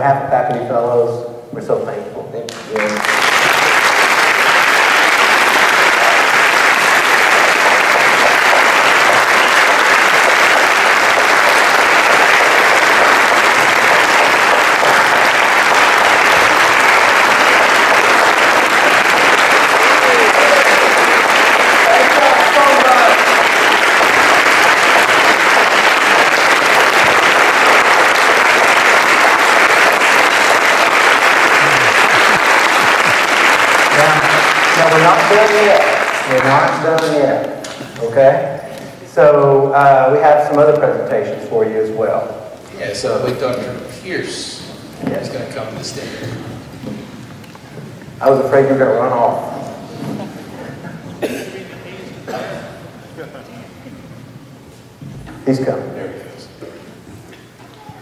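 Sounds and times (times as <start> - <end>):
large audience applauding: 2.5 - 38.9, 51.2 - 51.4.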